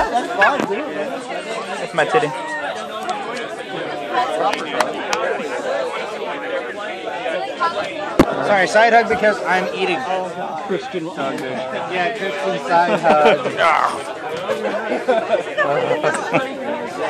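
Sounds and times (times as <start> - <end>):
indistinct chatter: 0.0 - 17.0.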